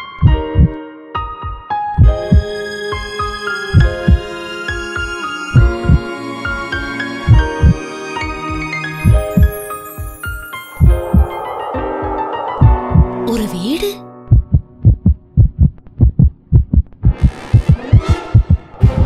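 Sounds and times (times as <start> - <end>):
soft keyboard music: 0.0 - 19.0
heartbeat thumps: 0.2 - 0.8, 1.4 - 2.5, 3.7 - 4.3, 5.6 - 6.1, 7.3 - 7.8, 9.0 - 10.2, 10.8 - 11.4, 12.6 - 13.2, 14.3 - 19.0.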